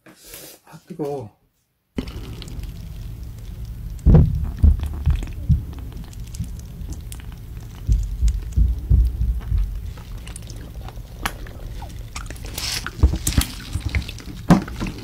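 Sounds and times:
sputtering air hiss: 9.7s - 13.7s
sauce squelching from squeeze bottle: 9.8s - 15.0s.

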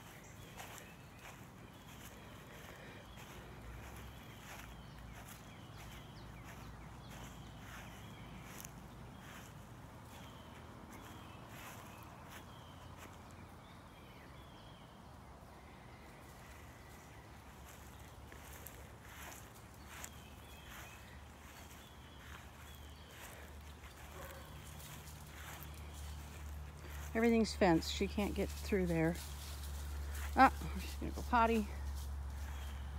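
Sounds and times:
footsteps on grass: 0.0s - 13.4s, 16.2s - 32.9s.

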